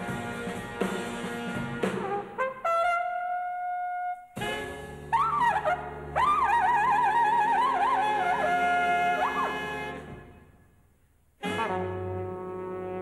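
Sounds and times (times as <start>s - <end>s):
trumpet solo with vibrato: 1.9s - 10.5s, 11.4s - 13.0s
big band chord: 4.3s - 5.2s, 11.4s - 13.0s.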